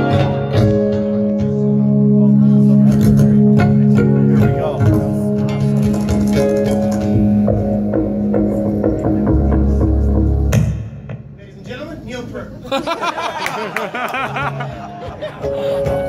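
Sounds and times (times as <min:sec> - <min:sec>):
amplified electric guitars playing: 0:00.0 - 0:10.7, 0:15.3 - 0:16.0
person laughing: 0:12.7 - 0:16.0.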